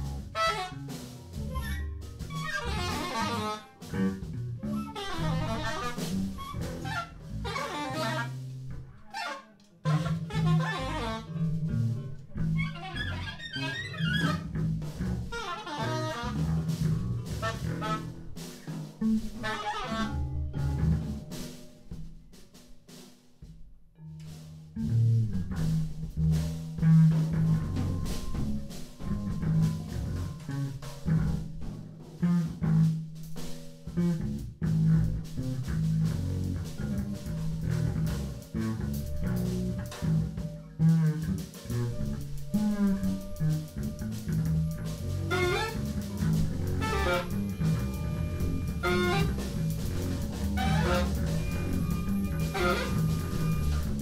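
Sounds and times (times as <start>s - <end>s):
bass guitar: 0.0s - 54.0s
drum kit: 0.0s - 54.0s
wind instrument sliding lines: 0.3s - 11.7s, 12.6s - 14.5s, 15.2s - 18.3s, 41.1s - 54.0s.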